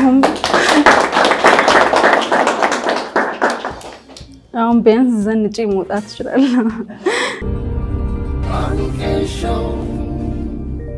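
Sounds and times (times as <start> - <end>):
many hands clapping: 0.0 - 4.4.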